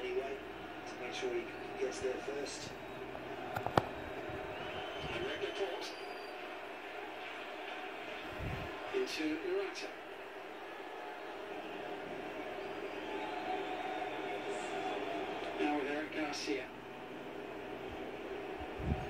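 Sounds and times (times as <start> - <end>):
stadium crowd hum: 0.0 - 19.0.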